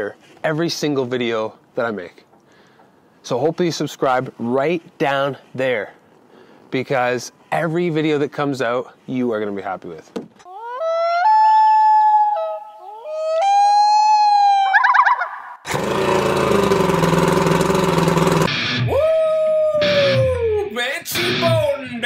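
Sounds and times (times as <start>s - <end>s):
high wailing tone: 10.5s - 20.7s
falling wail: 10.5s - 20.8s
outboard motor running: 15.7s - 18.5s.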